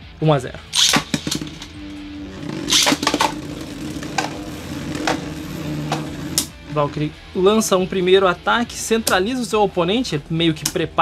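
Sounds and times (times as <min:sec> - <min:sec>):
top launcher zip and clatter: 0:00.8 - 0:07.0
spinning tops whirring: 0:00.8 - 0:07.1.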